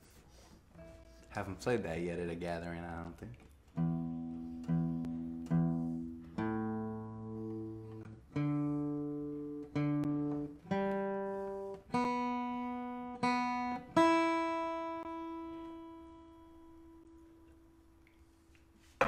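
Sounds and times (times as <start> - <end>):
acoustic guitar strings plucked: 3.7 - 17.6.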